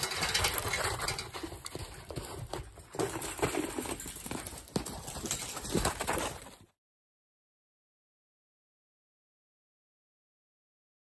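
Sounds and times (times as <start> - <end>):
horse hoofbeats on dirt: 0.0 - 6.8.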